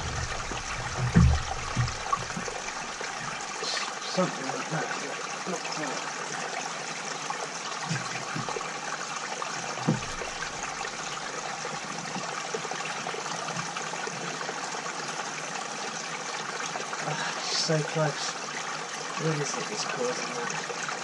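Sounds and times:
running water: 0.0s - 21.0s.

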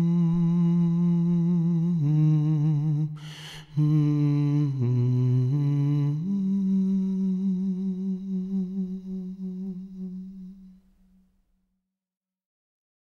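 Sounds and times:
man humming: 0.0s - 10.8s.

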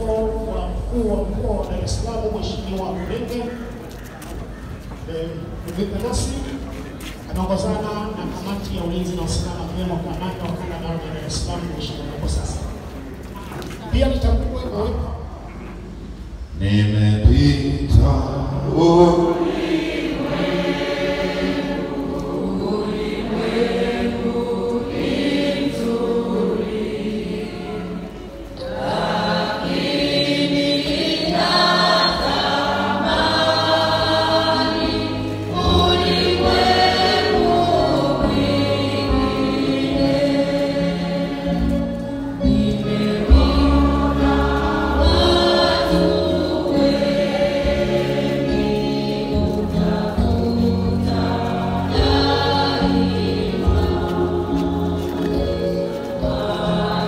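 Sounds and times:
church choir singing: 0.0s - 13.7s, 15.8s - 57.0s.

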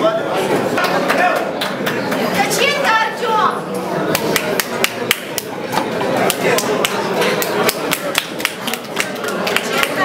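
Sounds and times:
people clapping: 0.7s - 2.7s, 4.1s - 5.6s, 6.2s - 10.0s.

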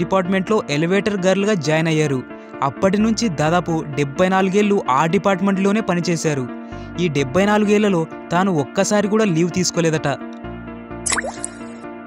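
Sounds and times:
background music with held tones: 0.0s - 12.0s
upward-gliding blip effect: 11.1s - 11.8s.

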